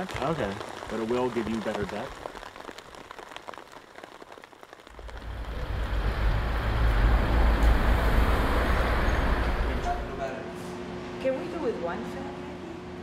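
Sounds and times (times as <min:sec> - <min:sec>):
highway traffic rumble: 0:04.9 - 0:10.3.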